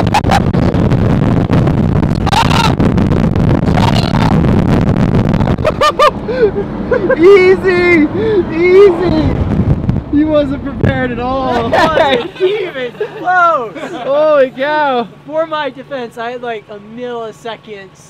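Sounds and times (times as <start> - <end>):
wind on microphone: 0.0 - 6.8, 8.1 - 12.0
vehicle driving off: 0.0 - 16.0
brief shouts: 2.2 - 2.8
loud wordless voices in car: 7.0 - 18.0.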